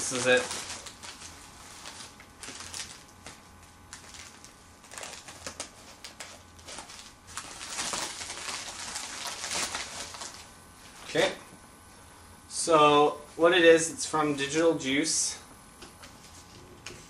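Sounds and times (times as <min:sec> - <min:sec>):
plastic crinkling and rustling: 0:00.0 - 0:11.2.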